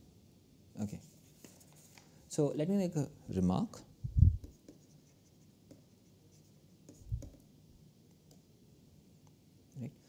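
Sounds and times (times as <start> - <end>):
stylus tapping on tablet screen: 4.2 - 5.0, 5.6 - 5.9, 6.8 - 7.5.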